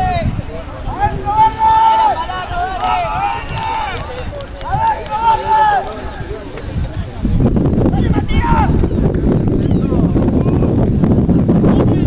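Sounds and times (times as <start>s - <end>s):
men shouting: 0.8s - 5.9s.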